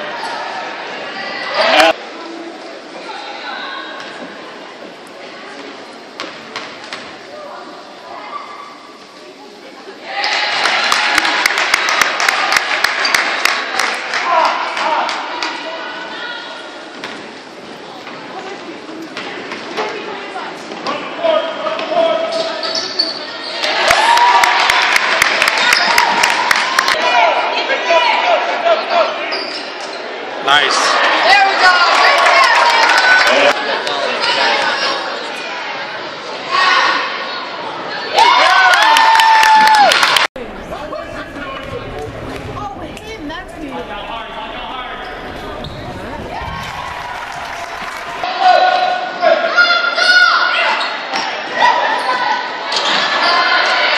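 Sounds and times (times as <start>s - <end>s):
crowd noise: 0.0s - 53.9s
sneaker squeaks: 22.3s - 23.6s, 29.2s - 30.1s, 45.0s - 46.8s.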